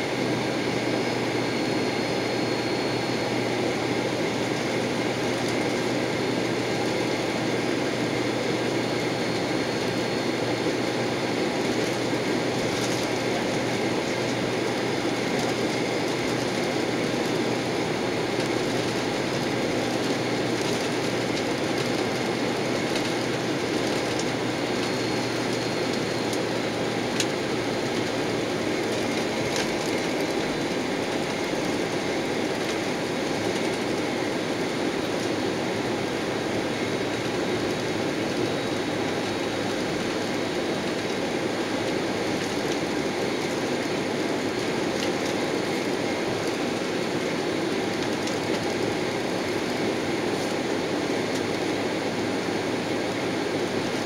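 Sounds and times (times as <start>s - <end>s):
jet cabin engine rumble: 0.0s - 51.9s.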